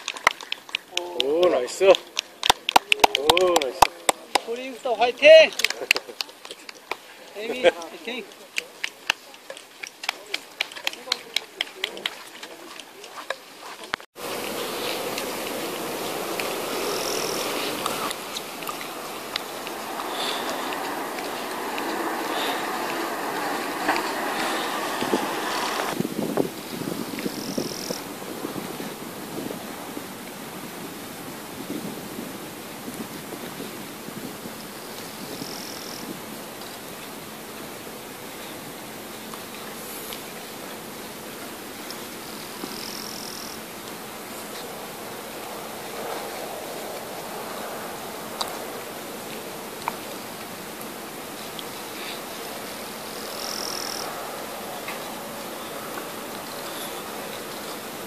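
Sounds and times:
outdoor background hiss: 0.0 - 58.0.

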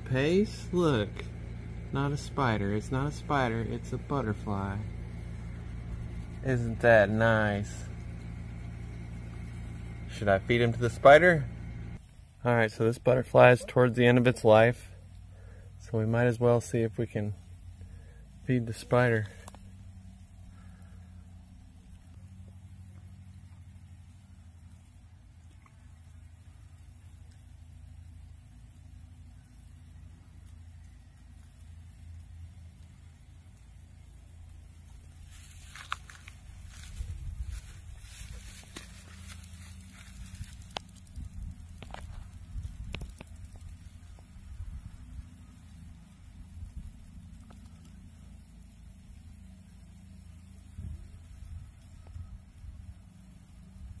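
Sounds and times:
low rumble: 34.4 - 48.2
rustling: 34.9 - 45.1.

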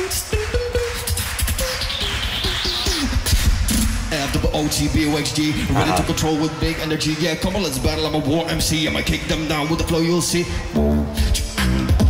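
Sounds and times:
person beatboxing: 0.0 - 9.6.

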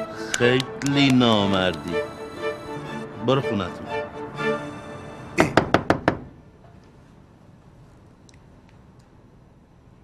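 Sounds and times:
knocks on wooden door: 5.4 - 6.3.

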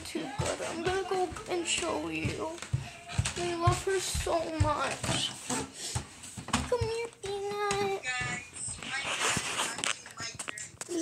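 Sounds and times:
phone rustling: 8.0 - 10.9.

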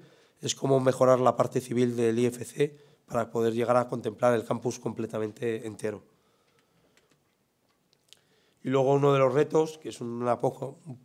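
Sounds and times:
faint clicks: 6.4 - 8.3.

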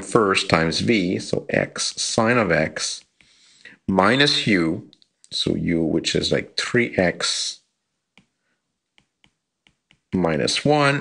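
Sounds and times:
stylus tapping glass screen: 8.1 - 10.2.

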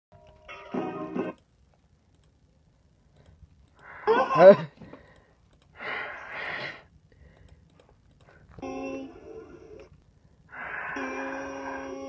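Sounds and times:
faint clicks: 1.3 - 2.4, 3.1 - 3.9, 4.9 - 5.8, 7.2 - 8.6
person exhaling breathily: 10.5 - 12.0.

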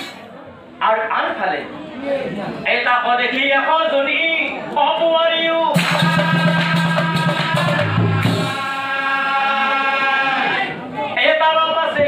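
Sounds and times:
man chanting through microphone: 2.7 - 12.0.

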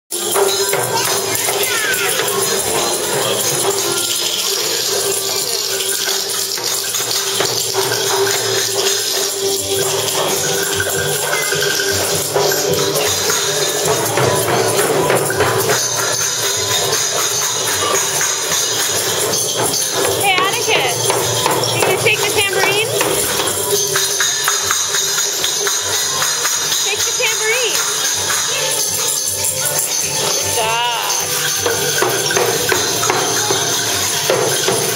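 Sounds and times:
tambourines jingling: 0.1 - 34.9.

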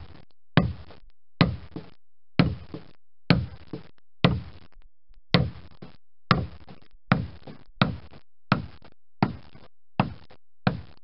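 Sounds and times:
wooden mallet striking caulking iron: 0.6 - 4.6, 5.3 - 11.0.

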